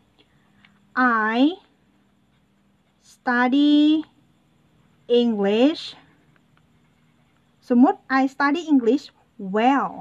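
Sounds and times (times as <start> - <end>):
person speaking: 0.6 - 4.2, 5.0 - 6.3
marker writing on paper: 1.9 - 3.5.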